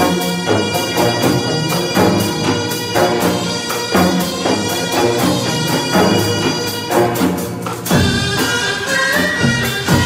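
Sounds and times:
percussion strikes: 0.0s - 10.0s
traditional orchestra playing: 0.0s - 10.0s.

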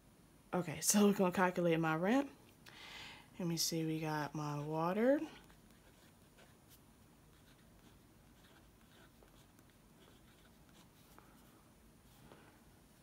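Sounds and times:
pen scratching on paper: 5.3s - 11.2s.

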